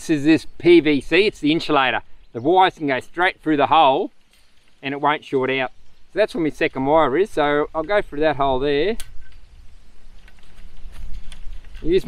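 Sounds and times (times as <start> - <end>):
wire clicking and scraping: 8.9 - 12.0.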